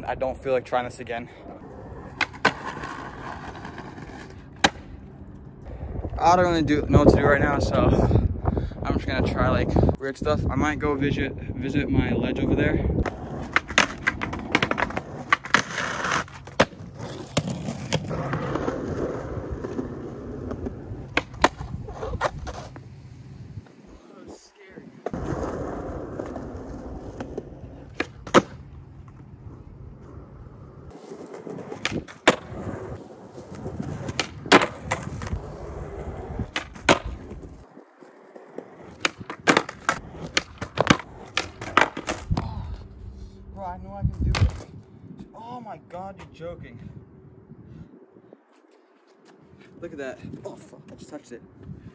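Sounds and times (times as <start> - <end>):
skateboard wheels rolling on concrete: 0.0 - 51.9
skateboard landing cracks: 2.2 - 4.9, 13.0 - 19.8, 20.4 - 22.8, 25.0 - 29.2, 31.3 - 32.8, 33.4 - 35.4, 36.5 - 37.6, 38.3 - 42.4
skateboard tail pops: 4.6 - 4.9, 21.1 - 22.7, 27.2 - 28.6, 31.7 - 32.6, 34.0 - 35.4, 36.5 - 37.4, 38.9 - 42.5, 44.3 - 44.7.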